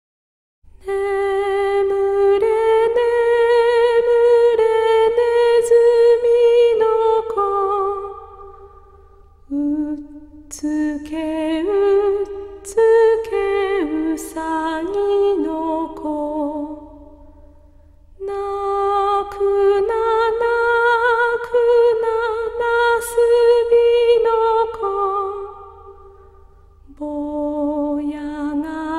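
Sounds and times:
woman singing a lullaby: 9.5s - 16.9s, 18.2s - 25.7s, 26.9s - 28.9s.

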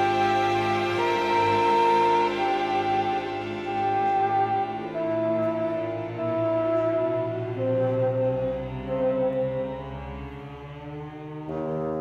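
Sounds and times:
orchestra playing held chords: 0.0s - 12.0s
solo bassoon: 0.0s - 12.0s.

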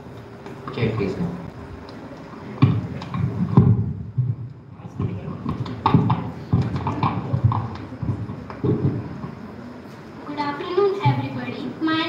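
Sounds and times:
microphone handling thumps: 2.6s - 9.4s.

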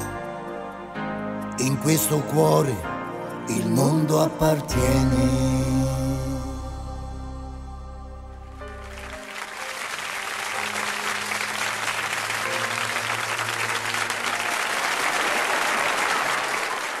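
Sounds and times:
audience applause: 8.7s - 17.0s.

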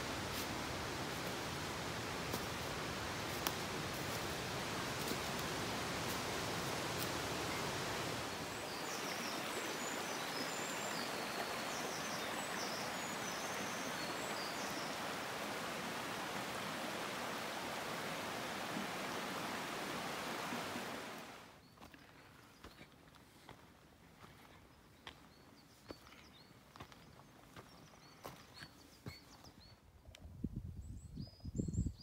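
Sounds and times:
stream running over rocks: 0.0s - 21.5s.

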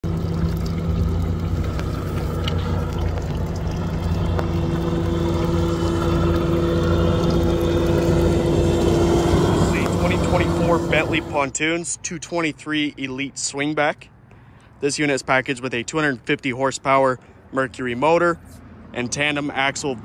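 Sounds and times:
outboard motor running: 0.0s - 11.6s.

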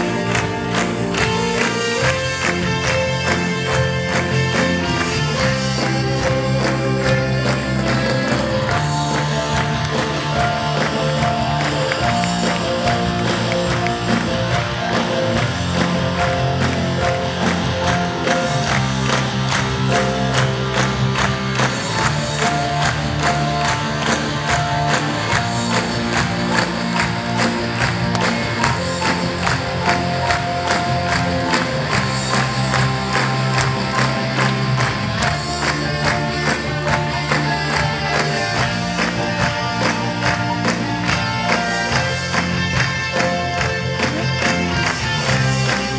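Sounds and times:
live band playing: 0.0s - 45.9s.

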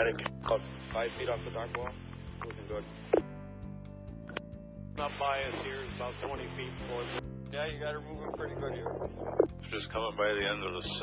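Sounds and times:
background music low notes: 0.0s - 11.0s.

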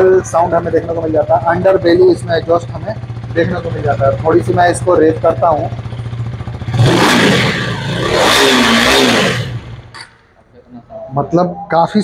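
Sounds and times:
motorcycle engine revving: 0.0s - 10.2s.

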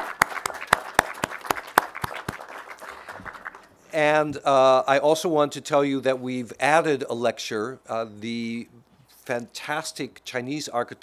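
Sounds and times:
crowd applauding: 0.0s - 3.7s
loud sharp claps nearby: 0.0s - 3.7s.

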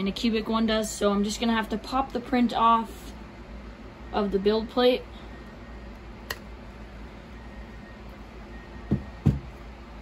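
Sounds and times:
dull thumps: 8.8s - 9.6s.

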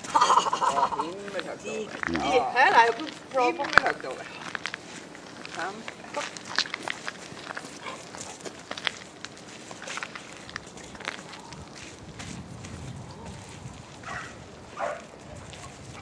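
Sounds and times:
paws and footsteps on gravel: 0.0s - 16.0s.

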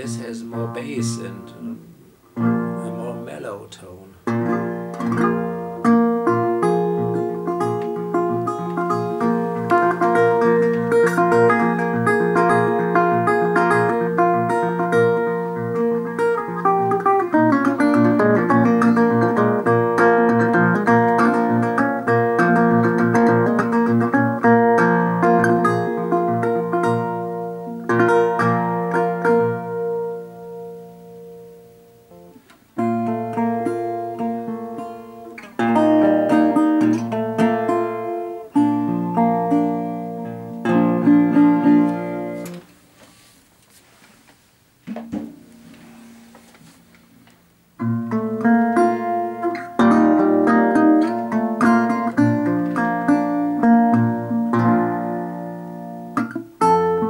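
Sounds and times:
fingerpicked resonator guitar: 0.0s - 42.8s, 45.0s - 57.0s.

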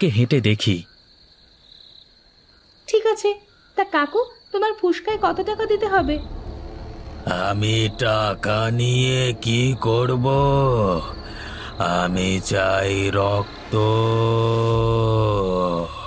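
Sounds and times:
man chanting: 7.1s - 16.0s.

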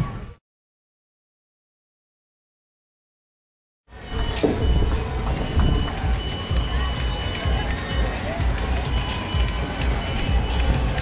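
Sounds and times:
high-pitched electronic beep tone: 3.9s - 11.0s
heavy low rumble: 4.0s - 11.0s.

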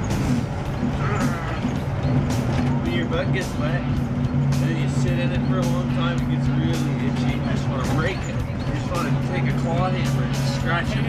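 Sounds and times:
bus engine and road drone: 0.0s - 11.0s
voices or music: 0.0s - 11.0s.

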